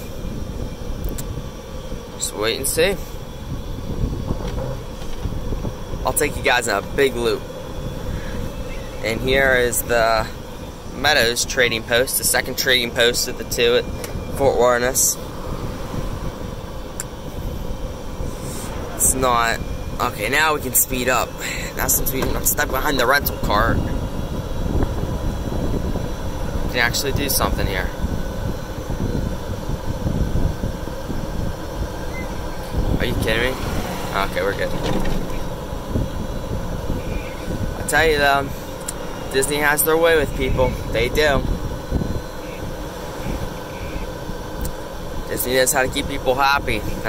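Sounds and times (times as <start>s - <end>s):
faint steady hum: 0.0s - 47.0s
golf cart driving: 0.0s - 47.0s
wind: 0.0s - 47.0s.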